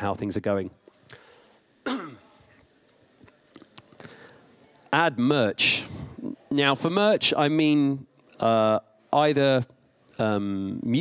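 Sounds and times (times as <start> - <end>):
man coughing into a microphone: 1.8 - 2.3.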